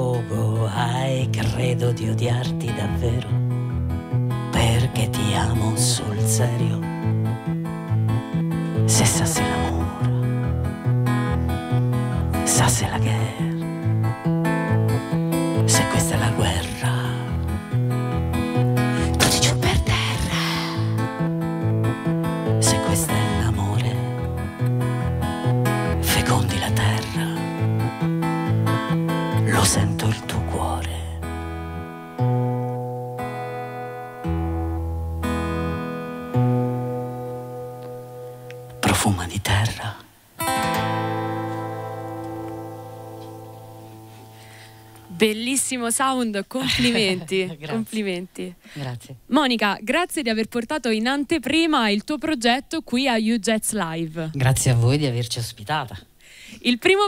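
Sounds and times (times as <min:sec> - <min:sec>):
acoustic guitar strumming: 0:00.0 - 0:39.1, 0:40.4 - 0:48.0.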